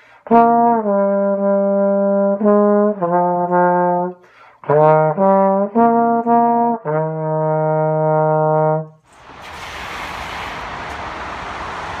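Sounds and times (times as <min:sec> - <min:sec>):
parking garage rushing ambience: 0:09.1 - 0:12.0.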